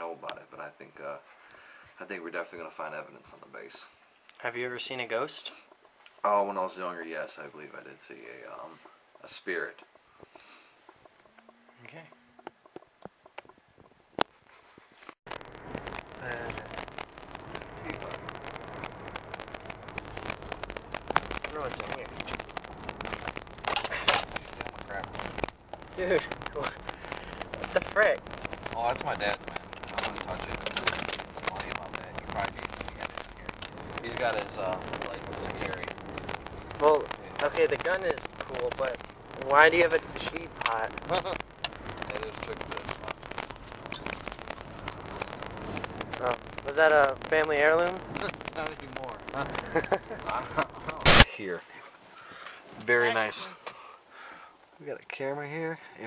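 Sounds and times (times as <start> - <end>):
small clicks and crackles: 8.4 - 51.3
car road and engine noise: 15.3 - 28.8, 29.4 - 37.5.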